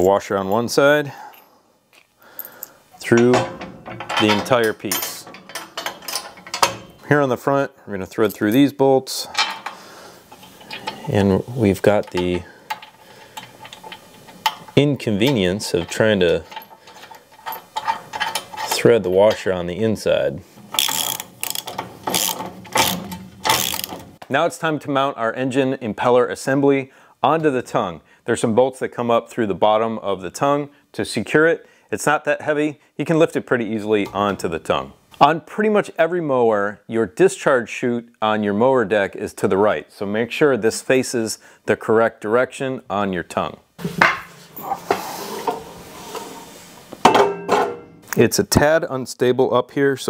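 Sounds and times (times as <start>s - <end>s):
soft rustling hiss: 3.9s - 24.4s, 43.3s - 47.0s
ratchet wrench clicking: 20.8s - 24.0s.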